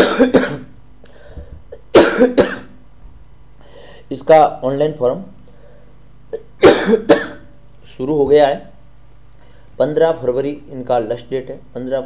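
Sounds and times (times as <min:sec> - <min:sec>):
man coughing: 0:00.0 - 0:00.8, 0:01.7 - 0:02.8, 0:06.3 - 0:07.6.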